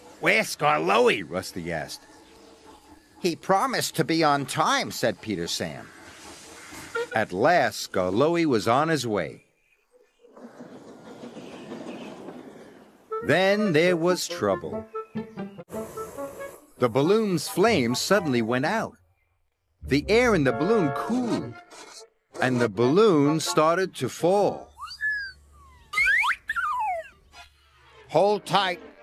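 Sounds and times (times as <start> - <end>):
steam locomotive puffing: 0.0 - 7.7, 10.4 - 13.7, 15.2 - 18.4
sliding whistle-like tones: 24.5 - 27.5.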